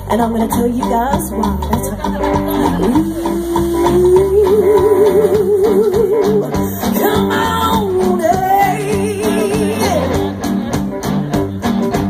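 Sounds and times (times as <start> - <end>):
live band playing: 0.0 - 12.0
woman singing a held note: 2.8 - 6.4.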